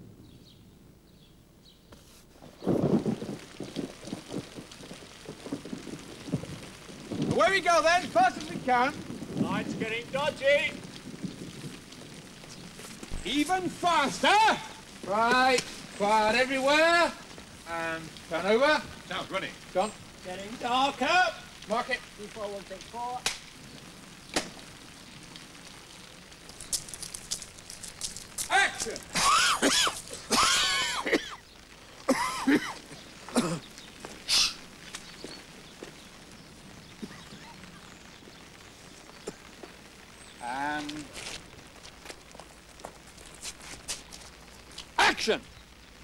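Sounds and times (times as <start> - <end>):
rain hissing: 0.0 - 46.0.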